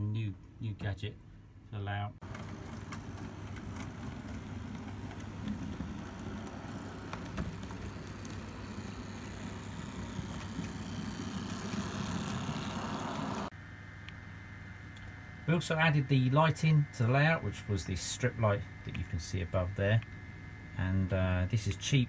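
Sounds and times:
model locomotive running: 2.2 - 13.5.

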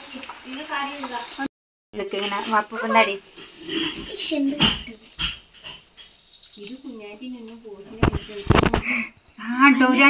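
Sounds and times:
sharp knocks or rustles: 3.8 - 6.2, 8.0 - 8.9.

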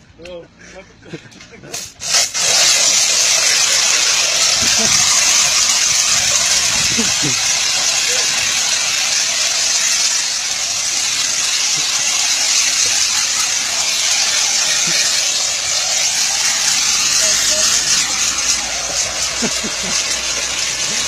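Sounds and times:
foam sprayer hissing: 1.6 - 21.0.

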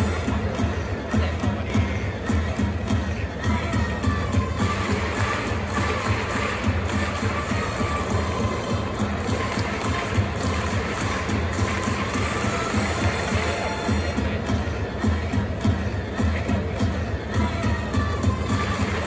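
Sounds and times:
crowd chanting: 0.0 - 19.0
drums: 0.0 - 19.0.

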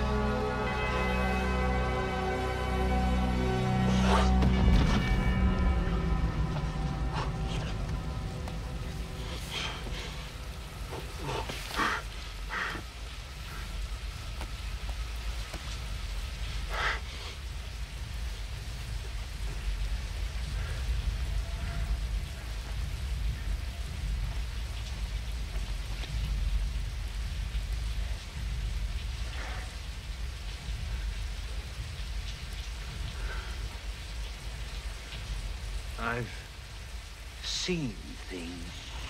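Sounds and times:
heavy rain falling: 0.0 - 39.0
deep continuous rumble: 3.7 - 39.0.

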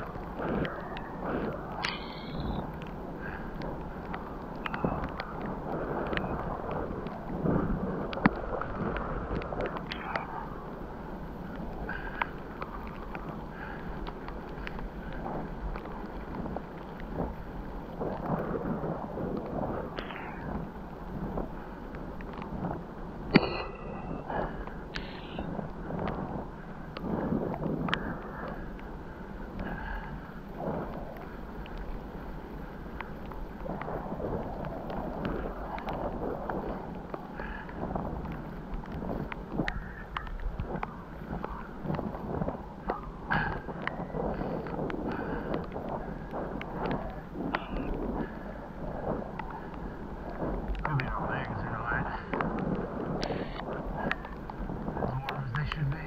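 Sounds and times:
wind on microphone: 0.0 - 56.0.

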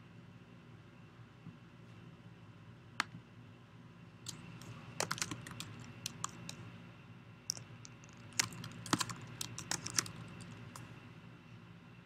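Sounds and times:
typing on computer keyboard: 4.3 - 6.6, 7.5 - 10.9.

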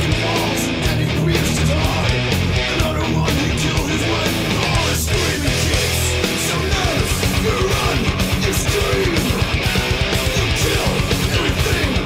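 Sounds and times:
distorted electric guitar riffing: 0.0 - 12.0
thrash metal music: 0.0 - 12.0.

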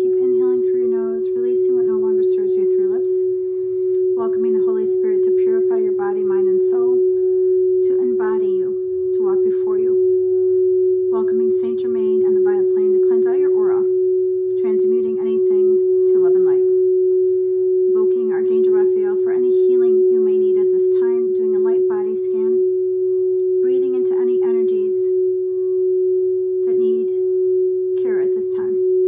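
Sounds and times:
woman speaking: 0.0 - 3.3, 4.1 - 7.1, 7.8 - 10.1, 11.1 - 13.9, 14.5 - 16.8, 17.9 - 22.6, 23.6 - 25.2, 26.6 - 27.2, 28.0 - 28.8
steady meditation drone: 0.0 - 29.0.

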